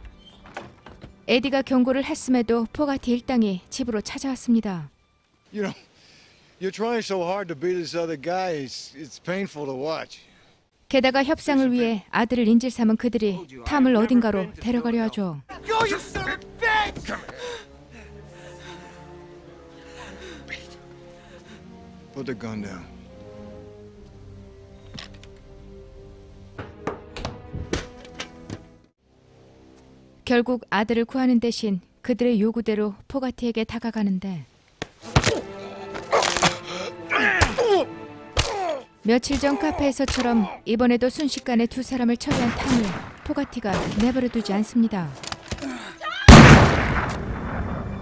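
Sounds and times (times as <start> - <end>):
boy gasping and breathing: 17.3 - 19.1, 19.8 - 21.7, 35.5 - 37.0, 45.6 - 46.0
man crying out: 37.0 - 38.9.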